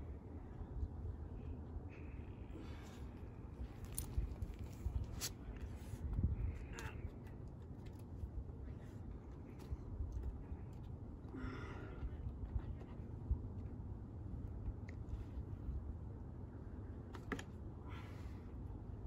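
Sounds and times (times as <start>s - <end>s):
steady low rumble: 0.0s - 19.0s
climber breathing hard: 11.3s - 13.0s.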